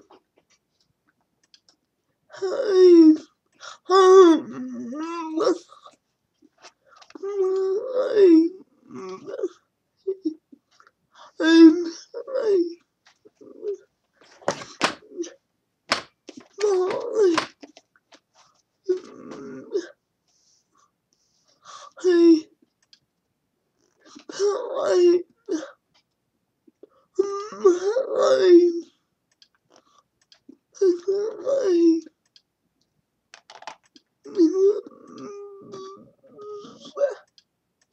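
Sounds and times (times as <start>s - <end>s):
woman's strained vocal sounds: 18.9s - 20.0s, 34.2s - 37.3s
faint clicks: 22.6s - 23.1s, 32.2s - 34.1s.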